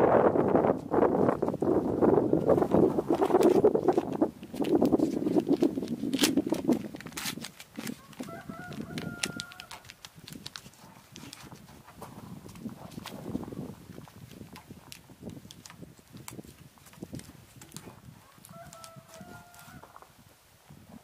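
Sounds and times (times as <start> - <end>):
rubbing noise: 0.8 - 13.8.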